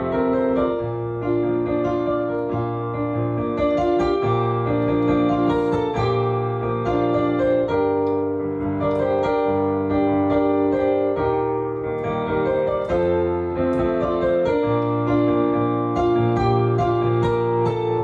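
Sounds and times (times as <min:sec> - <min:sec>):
solo piano playing: 0:00.0 - 0:18.0.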